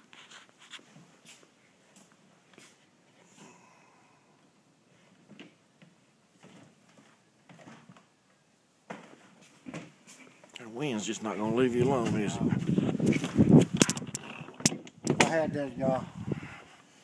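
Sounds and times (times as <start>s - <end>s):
wheelchair wheels clicking and knocking: 13.1s - 15.4s.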